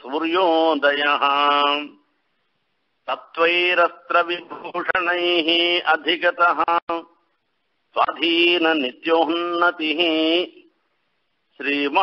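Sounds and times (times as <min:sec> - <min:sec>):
man chanting melodically: 0:00.0 - 0:02.0, 0:03.0 - 0:07.2, 0:07.9 - 0:10.7, 0:11.6 - 0:12.0.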